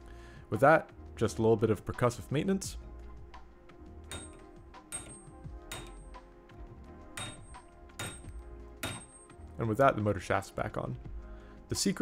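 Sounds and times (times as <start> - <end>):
background music: 0.0 - 12.0
sharp metallic taps: 4.0 - 6.2, 7.2 - 9.4.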